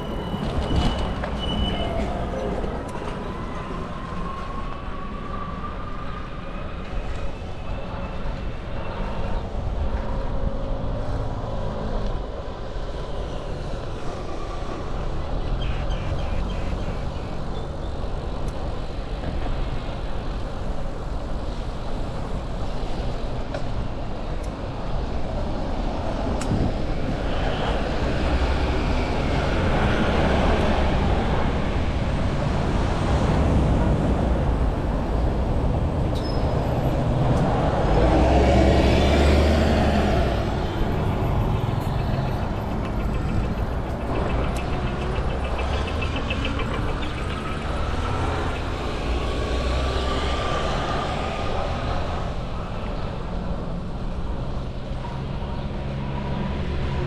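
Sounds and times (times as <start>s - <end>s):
street traffic passing: 0.0s - 57.0s.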